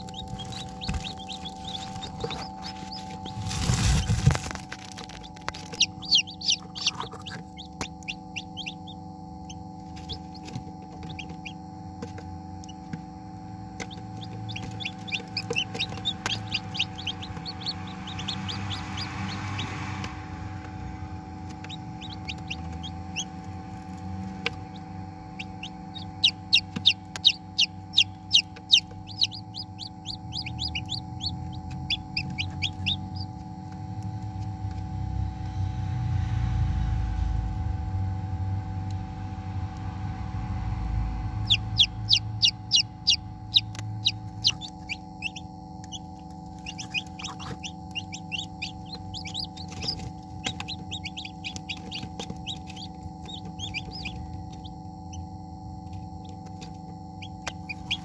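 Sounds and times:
chick peeping: 0.0s - 13.0s, 13.7s - 20.8s, 21.5s - 34.8s, 40.9s - 55.2s, 55.8s - 58.0s
steady hum: 0.0s - 58.0s.

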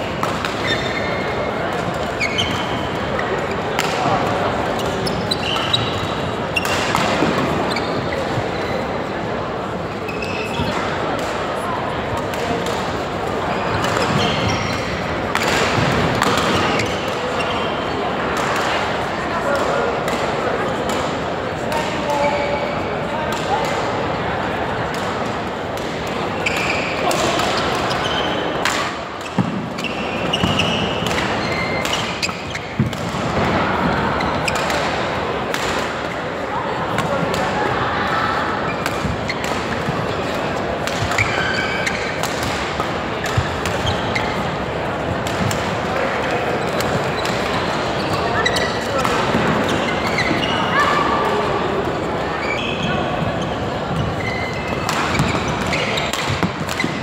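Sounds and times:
background chatter of voices: 0.0s - 57.0s
rackets hitting shuttlecock: 0.1s - 8.6s, 10.2s - 17.6s, 23.2s - 24.0s, 24.9s - 37.8s, 38.4s - 50.5s, 53.9s - 57.0s.

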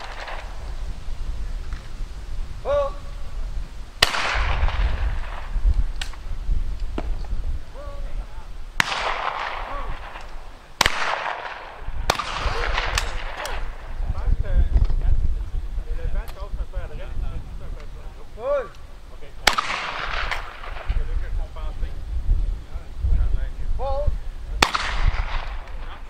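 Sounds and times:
shotgun shots echoing: 0.0s - 0.7s, 4.0s - 6.2s, 8.8s - 14.0s, 19.4s - 21.2s, 24.6s - 26.0s.

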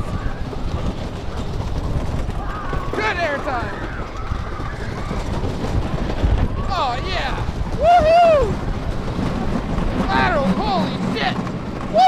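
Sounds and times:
roller coaster train rumbling: 0.0s - 12.0s.

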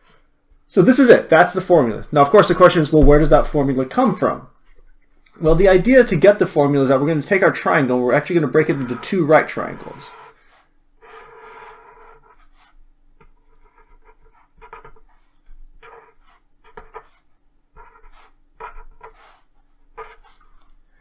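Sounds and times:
marker pen scratching on paper: 1.4s - 3.8s, 5.4s - 7.2s, 7.9s - 20.6s.

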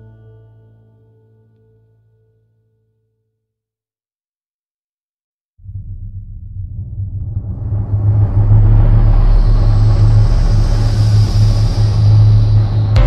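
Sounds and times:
deep rumbling drone: 5.6s - 13.0s.

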